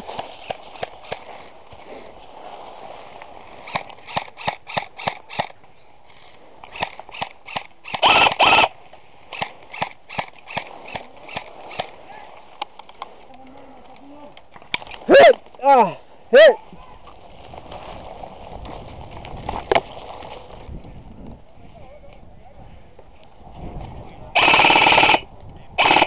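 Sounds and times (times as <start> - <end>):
airsoft rifle shots: 6.7 - 8.7, 24.4 - 25.2, 25.8 - 26.0.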